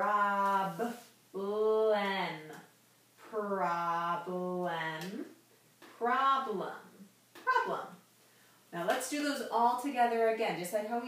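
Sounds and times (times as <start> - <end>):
woman spelling out letters: 0.0 - 8.0.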